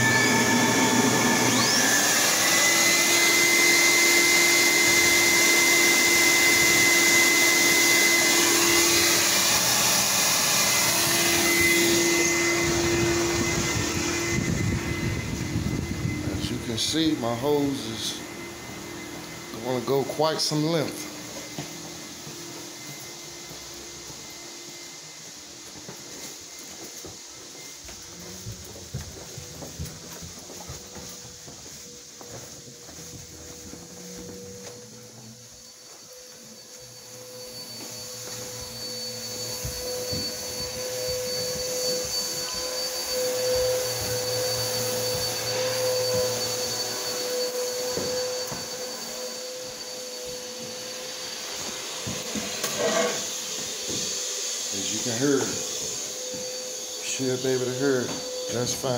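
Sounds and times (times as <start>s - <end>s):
carpet extractor vacuum whine: 0.0s - 58.9s.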